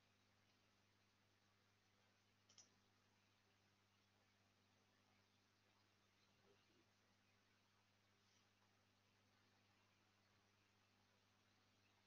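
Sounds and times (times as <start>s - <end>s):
faint low hum: 0.0s - 12.0s.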